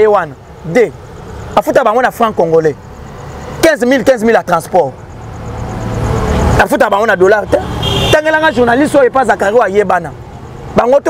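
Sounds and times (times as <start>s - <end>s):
man speaking: 0.0s - 5.0s, 6.4s - 11.0s
vehicle engine rumbling: 0.0s - 11.0s.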